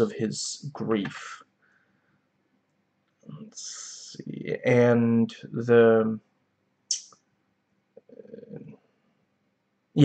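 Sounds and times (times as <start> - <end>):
person speaking: 0.0 - 1.4, 3.3 - 6.2.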